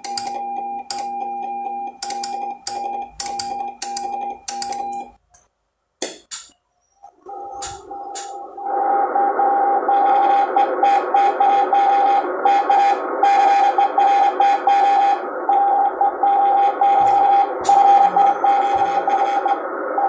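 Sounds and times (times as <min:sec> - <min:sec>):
morse code beeping tone: 0:00.0 - 0:05.2, 0:09.9 - 0:20.0
radio band hiss: 0:07.6 - 0:20.0.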